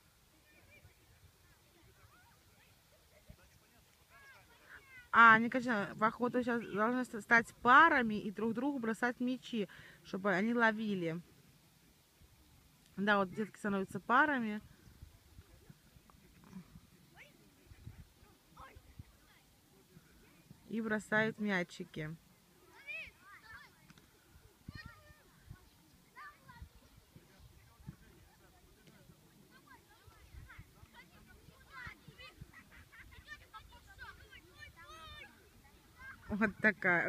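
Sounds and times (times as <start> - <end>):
distant children's voices: 0.0 - 5.2, 22.4 - 36.5.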